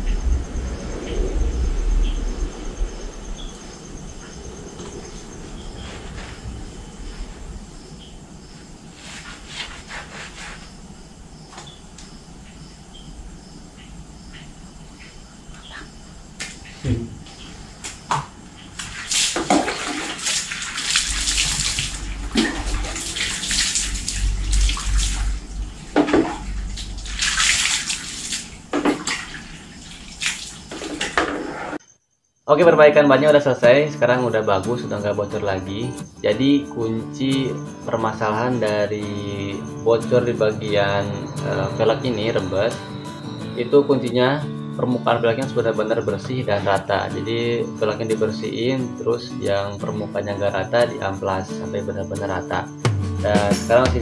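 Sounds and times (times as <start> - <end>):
hands splashing soapy water: 18.8 - 25.4, 26.8 - 31.2.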